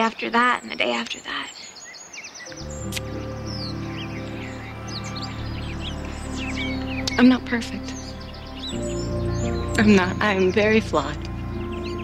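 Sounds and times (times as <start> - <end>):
birds chirping: 0.0 - 12.0
soft sustained low chords: 2.5 - 12.0.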